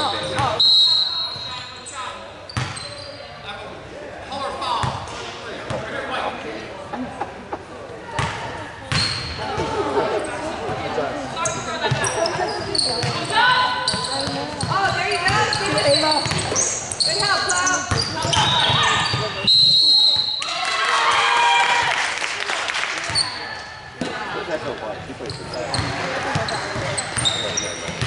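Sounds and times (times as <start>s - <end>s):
shoe squeaks: 0.0s - 3.4s, 9.0s - 9.4s, 11.4s - 20.4s, 23.1s - 23.7s, 25.2s - 28.0s.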